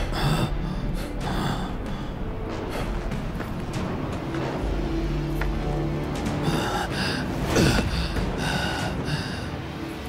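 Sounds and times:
low background music: 0.0 - 10.0.

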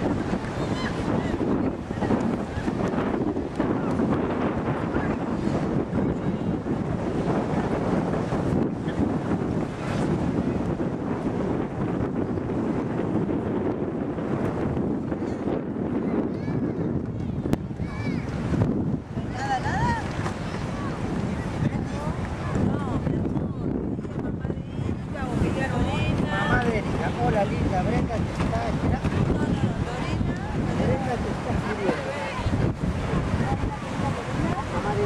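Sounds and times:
surf washing on beach: 0.0 - 35.0
wind buffeting microphone: 0.0 - 35.0.

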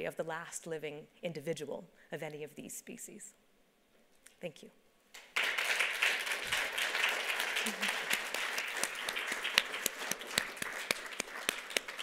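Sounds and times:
audience applauding: 5.2 - 12.0.

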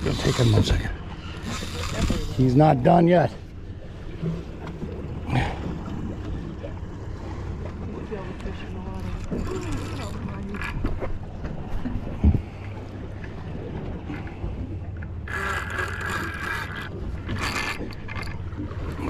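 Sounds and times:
boat motor hum: 0.0 - 19.0.

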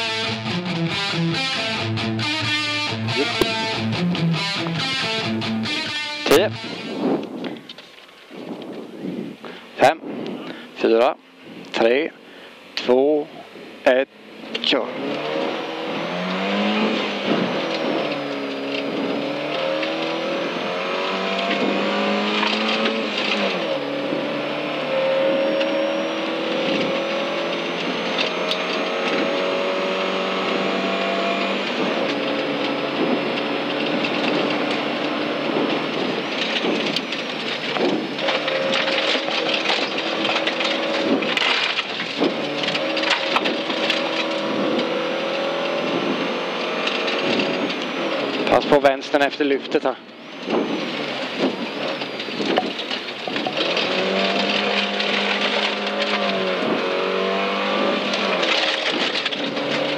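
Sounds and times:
car engine accelerating: 0.0 - 59.9
gravel hitting car: 14.5 - 59.9.

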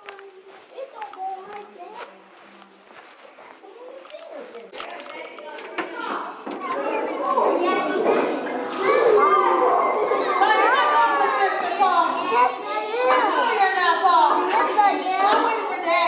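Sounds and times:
children chattering: 0.0 - 16.0.

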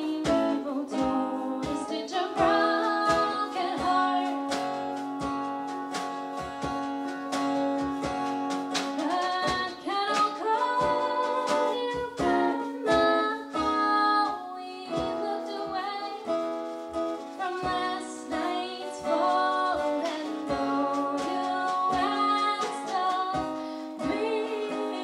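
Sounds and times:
woman singing: 0.0 - 5.1, 9.0 - 16.5, 17.4 - 25.0
plucked string instrument: 0.0 - 25.0
strummed acoustic guitar: 0.0 - 25.0
percussion strokes: 0.2 - 13.7, 15.0 - 25.0.

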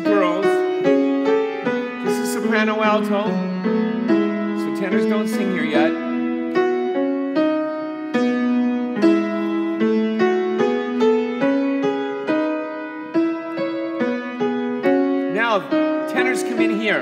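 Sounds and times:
keyboard playing two-part harmony: 0.0 - 17.0.

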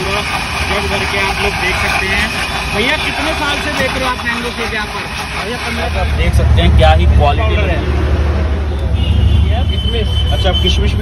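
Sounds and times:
low rumble of street traffic: 0.0 - 11.0.

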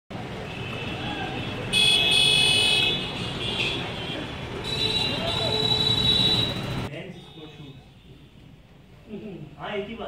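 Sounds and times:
street traffic: 0.1 - 10.0
vehicle horn: 0.5 - 7.7.

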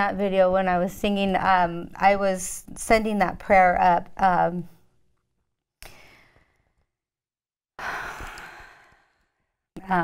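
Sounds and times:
woman breathing: 5.8 - 6.9, 7.8 - 9.7.

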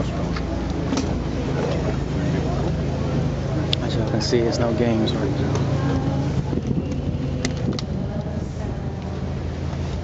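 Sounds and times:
low crowd rumble: 0.0 - 10.0
murmur of voices: 0.0 - 10.0.

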